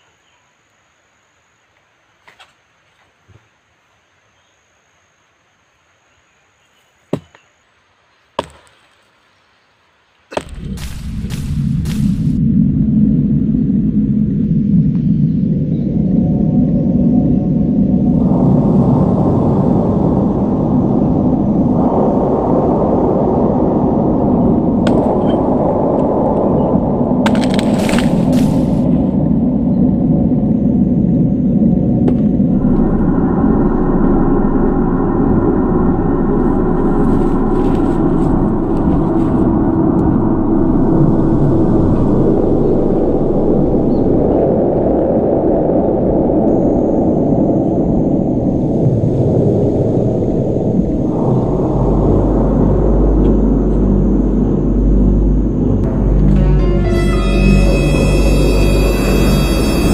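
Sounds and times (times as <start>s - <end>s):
ominous horror film score: 10.3s - 59.9s.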